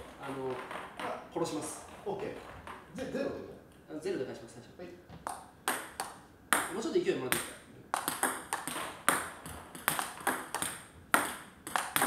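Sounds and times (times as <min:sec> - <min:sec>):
table tennis ball clicking: 0:07.4 - 0:12.0.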